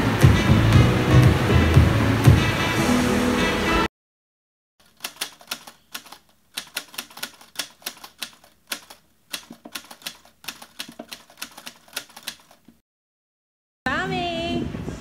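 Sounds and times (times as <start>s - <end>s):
typewriter key clicks: 4.8s - 12.7s.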